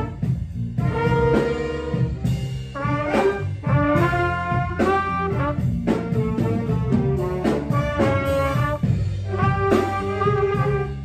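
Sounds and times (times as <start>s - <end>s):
jazz band accompaniment: 0.0s - 11.0s
trumpet playing sustained notes: 0.0s - 11.0s.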